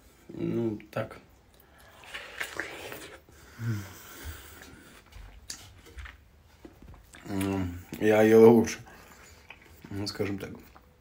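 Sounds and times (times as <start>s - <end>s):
man chewing watermelon: 0.0s - 11.0s.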